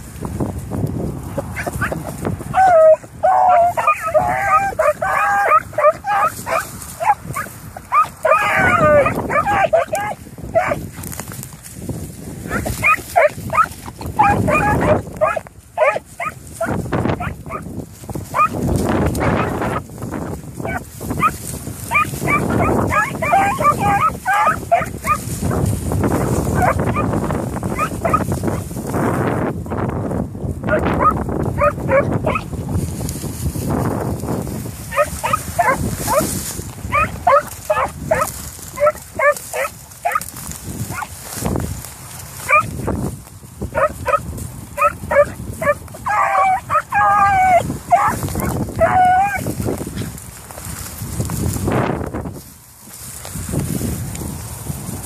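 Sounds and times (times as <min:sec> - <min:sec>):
wind buffeting microphone: 0:00.0 - 0:55.0
dogs barking and bawling: 0:01.5 - 0:10.9, 0:12.5 - 0:17.7, 0:18.3 - 0:19.9, 0:20.6 - 0:25.3, 0:26.1 - 0:28.7, 0:30.6 - 0:32.5, 0:34.9 - 0:36.3, 0:36.9 - 0:40.3, 0:40.9 - 0:41.2, 0:42.4 - 0:42.8, 0:43.7 - 0:49.6.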